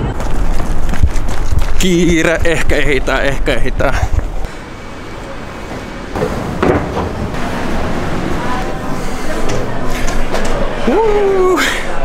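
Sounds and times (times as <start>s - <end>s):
building interior background noise: 0.0s - 12.0s.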